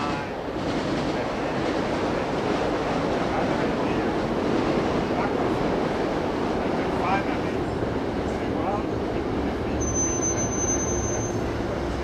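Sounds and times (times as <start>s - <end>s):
people chatting: 6.8s - 7.6s.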